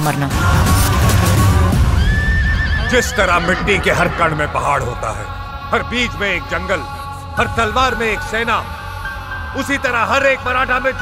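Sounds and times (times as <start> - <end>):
loud bass-heavy music: 0.0 - 4.9.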